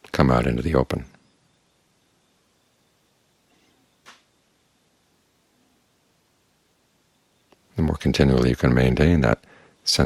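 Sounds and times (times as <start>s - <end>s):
man speaking: 0.0s - 1.2s, 7.7s - 10.0s
faint background hiss: 0.0s - 10.0s.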